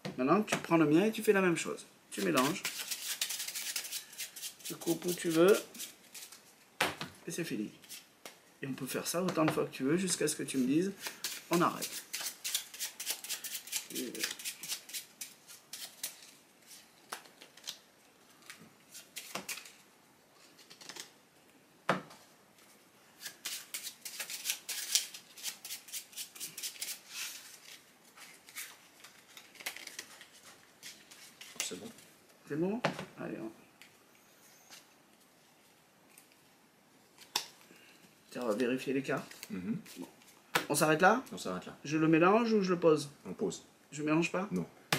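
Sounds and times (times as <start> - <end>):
playing cards being shuffled: 2.2 - 7.1, 10.6 - 19.8, 20.4 - 21.2.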